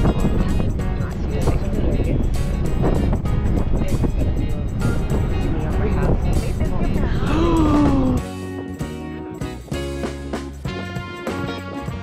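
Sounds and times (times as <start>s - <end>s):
ferry engine rumble: 0.0s - 8.2s
music with beat and voice: 0.0s - 12.0s.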